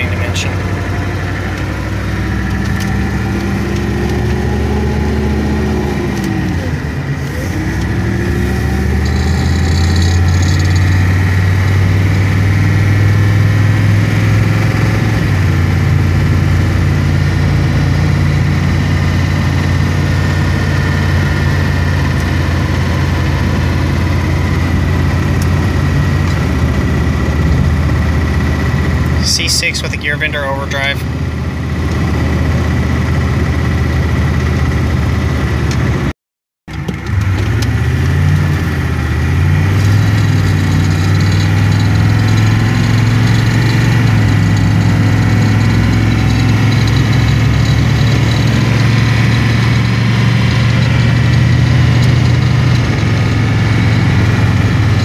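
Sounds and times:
diesel truck engine under load: 0.0s - 36.1s, 36.7s - 55.0s.

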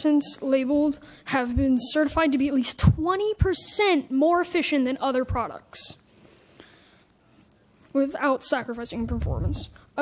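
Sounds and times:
soft breath: 6.1s - 7.9s.

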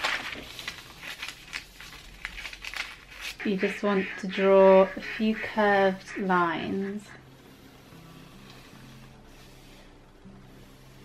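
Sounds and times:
paper rustling: 0.0s - 3.4s
paper crinkling: 0.0s - 3.5s
scissors cutting paper: 0.0s - 3.5s.

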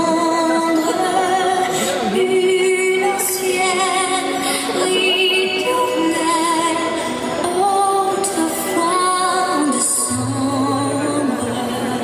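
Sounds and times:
woman singing with vibrato: 0.0s - 12.0s.

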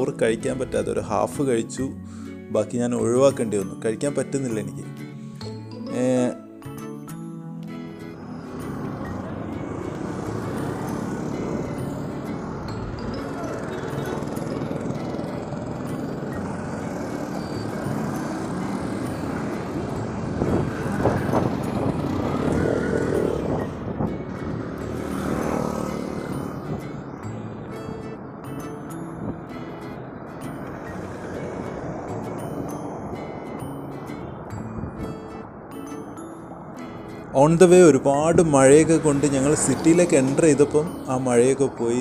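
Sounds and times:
background music: 0.0s - 42.0s
street traffic: 0.0s - 42.0s.

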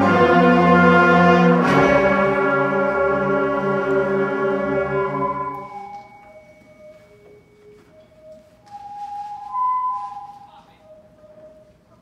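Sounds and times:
concert band playing chords: 0.0s - 6.0s.

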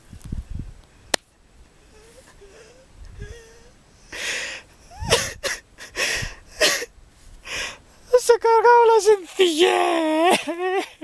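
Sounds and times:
man gasping for air: 1.9s - 7.8s.

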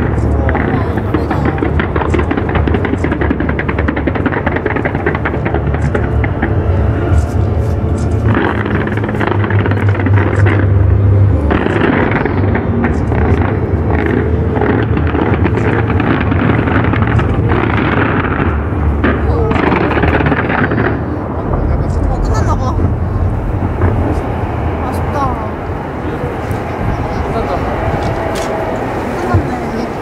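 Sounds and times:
crowd voices: 0.0s - 30.0s
fireworks bangs: 0.0s - 30.0s
fireworks crackling and popping: 0.0s - 30.0s.

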